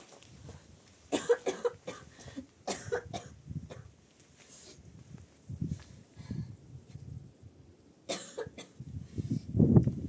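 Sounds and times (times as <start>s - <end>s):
person coughing: 1.1s - 3.9s, 8.1s - 8.8s.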